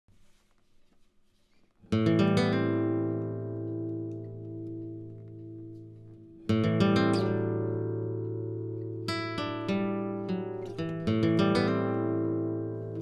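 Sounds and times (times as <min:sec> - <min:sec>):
guitar chord strummed and ringing: 0:01.9 - 0:13.0.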